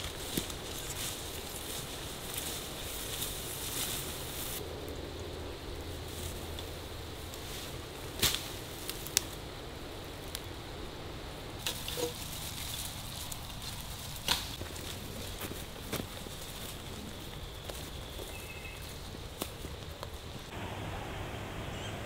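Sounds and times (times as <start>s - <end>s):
fern fronds rustling and snapping: 0.0s - 20.5s
outdoor background noise: 0.0s - 22.0s.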